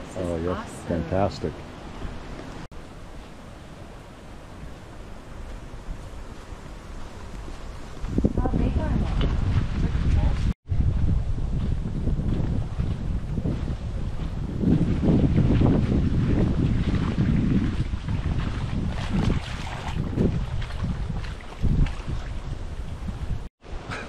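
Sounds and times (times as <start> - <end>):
wind buffeting microphone: 3.9 - 24.0
waves lapping at shore: 15.6 - 23.0.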